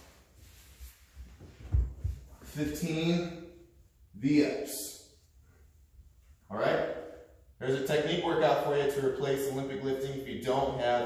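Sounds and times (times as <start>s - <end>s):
soft bumps on gym mat: 1.3s - 2.5s
body thumping onto gym mat: 1.6s - 2.4s.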